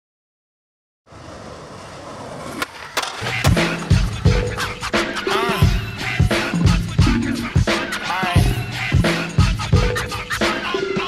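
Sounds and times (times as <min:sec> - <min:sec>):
skateboard wheels rolling on concrete: 0:01.0 - 0:07.0
skateboard clacks: 0:01.2 - 0:05.3
hip-hop beat with kick drums: 0:03.3 - 0:11.0.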